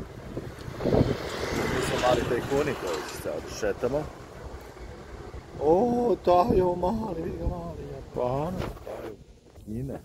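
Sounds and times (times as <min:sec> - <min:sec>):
passing vehicle hiss: 0:00.0 - 0:06.2.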